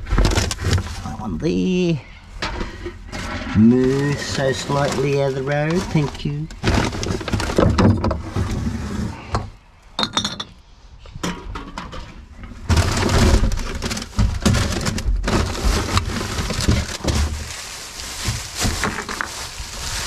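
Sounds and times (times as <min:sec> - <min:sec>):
knocks and clatter in bin: 0:00.0 - 0:01.0, 0:05.8 - 0:08.6, 0:11.2 - 0:17.6, 0:18.2 - 0:19.4
rubbish rustling and crinkling: 0:00.0 - 0:09.3, 0:12.0 - 0:20.0.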